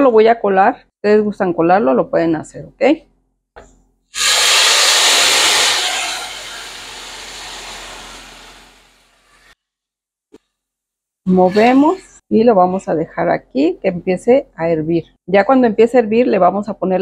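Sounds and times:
liquid sizzling in hot pan: 4.2s - 9.6s.

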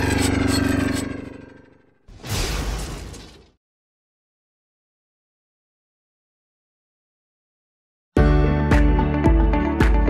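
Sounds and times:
low fluttering drone: 0.0s - 1.9s.

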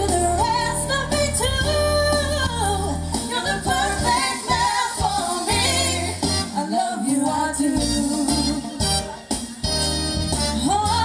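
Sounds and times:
women singing slow love song: 0.0s - 8.6s
musical accompaniment: 0.0s - 11.0s.

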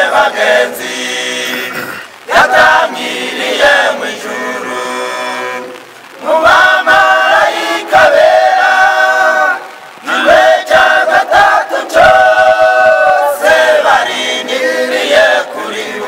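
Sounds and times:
choir singing a cappella: 0.0s - 16.0s.

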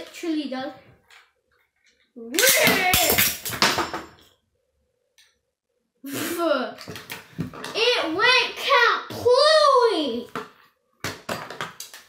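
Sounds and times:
child making wordless vocal sounds: 6.0s - 6.8s, 7.7s - 10.3s.

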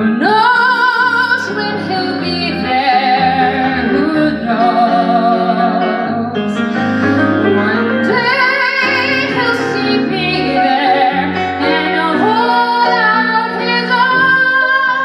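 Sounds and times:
instrumental accompaniment: 0.0s - 15.0s
woman singing a show tune: 7.2s - 11.0s.

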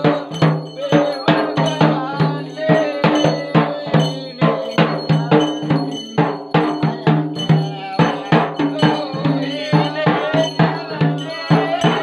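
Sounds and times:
double-headed drum beaten by hand: 0.0s - 12.0s
ringing metallic tone: 0.0s - 12.0s.

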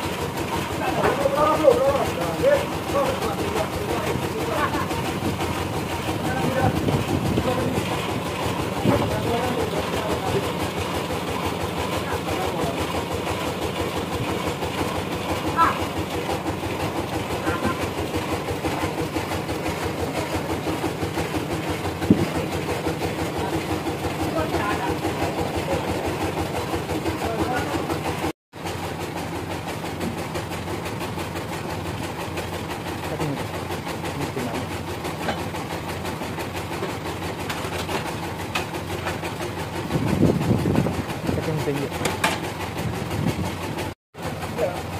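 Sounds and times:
sawmill machinery droning: 0.0s - 44.9s.

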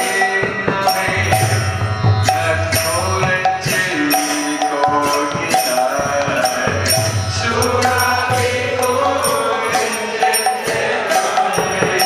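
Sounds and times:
drum beaten with stick: 0.0s - 12.0s
group devotional chanting: 0.0s - 12.0s
man leading chant: 0.0s - 12.0s
ringing metallic percussion: 0.0s - 12.0s.

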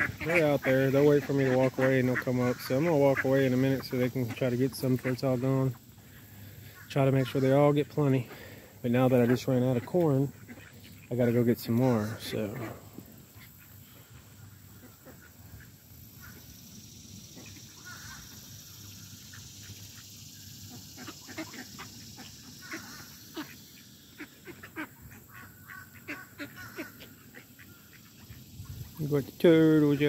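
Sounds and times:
ducks calling quietly: 0.0s - 30.0s
ducks feeding ticks and rustles: 0.0s - 30.0s.

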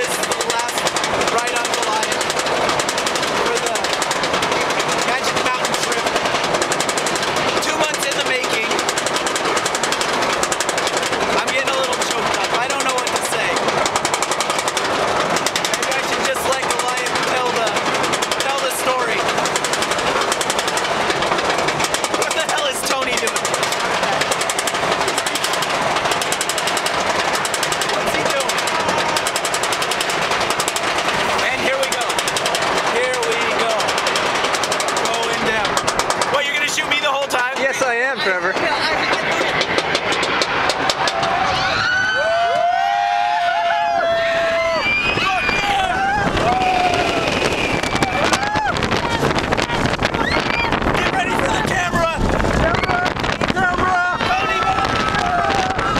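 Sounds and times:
riders' voices: 0.0s - 6.5s, 7.4s - 9.0s, 11.3s - 13.7s, 15.6s - 19.4s, 21.4s - 30.2s, 30.9s - 39.9s, 45.2s - 55.9s
anti-rollback dogs ratcheting: 0.0s - 41.6s
roller coaster chain lift clatter: 0.0s - 55.9s.

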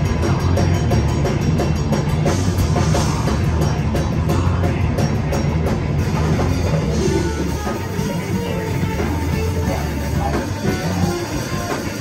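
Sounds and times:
distorted electric guitars: 0.0s - 12.0s
live metal band playing: 0.0s - 12.0s
rapid drum beat with cymbals: 0.0s - 12.0s.

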